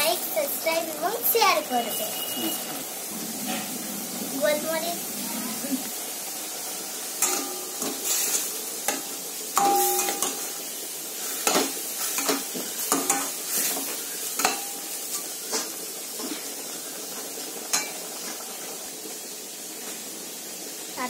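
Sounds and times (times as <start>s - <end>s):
steady sizzle: 0.0s - 21.0s.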